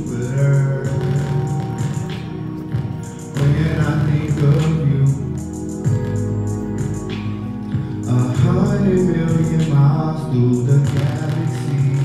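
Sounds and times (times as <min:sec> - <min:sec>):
instrumental backing music: 0:00.0 - 0:12.0.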